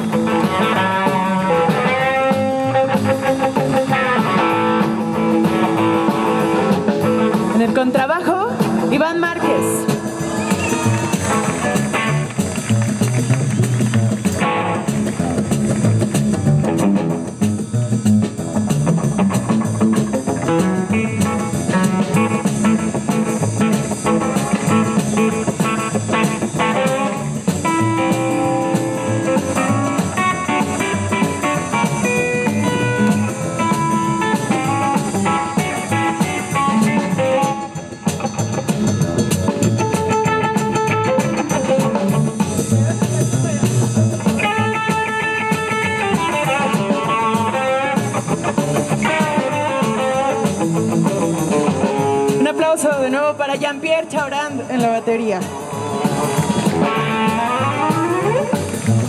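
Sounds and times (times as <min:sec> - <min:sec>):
double bass: 0:00.0 - 0:52.4, 0:54.7 - 0:59.0
drum kit: 0:00.0 - 0:59.0
plucked string melody: 0:55.6 - 0:59.0.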